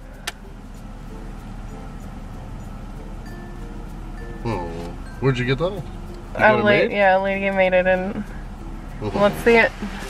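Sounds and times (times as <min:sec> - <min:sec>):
soft chime-like notes: 0:00.1 - 0:07.3.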